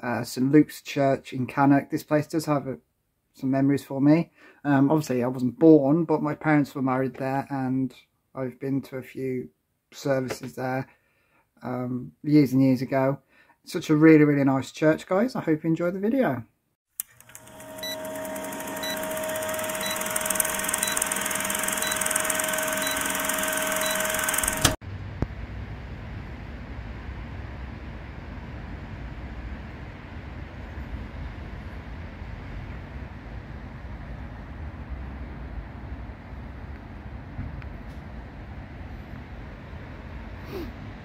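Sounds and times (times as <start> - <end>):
held tones: 17.0 - 24.8
projector-like whirr: 17.0 - 24.8
short beeps: 20.8 - 24.3
low outdoor rumble: 24.9 - 41.0.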